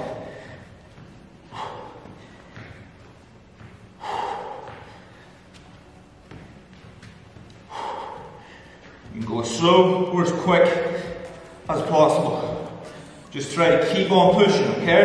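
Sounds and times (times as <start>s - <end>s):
man breathing hard: 0.0s - 5.6s, 7.5s - 9.1s, 12.7s - 13.3s.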